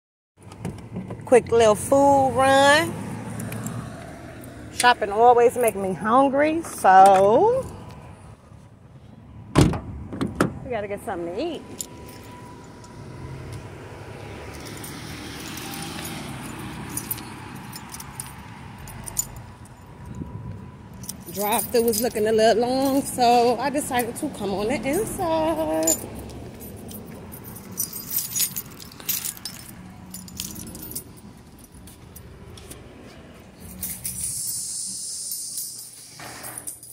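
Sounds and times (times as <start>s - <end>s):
faint outdoor background noise: 0.4s - 36.9s
keys jangling: 14.4s - 20.1s, 20.9s - 32.8s, 33.6s - 36.9s.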